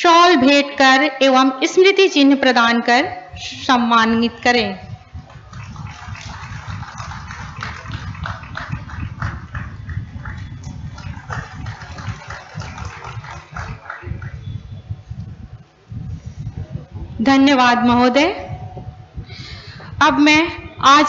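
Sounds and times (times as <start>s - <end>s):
audience clapping: 5.3s - 14.6s.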